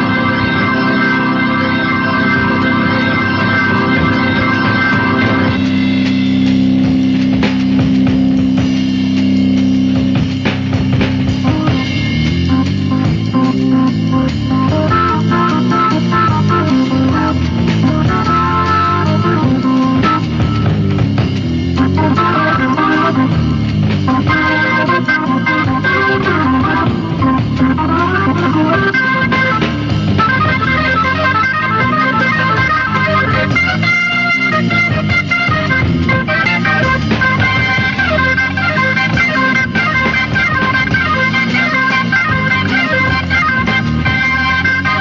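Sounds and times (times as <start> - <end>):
jazz-rock band playing: 0.0 - 45.0
organ: 0.0 - 45.0.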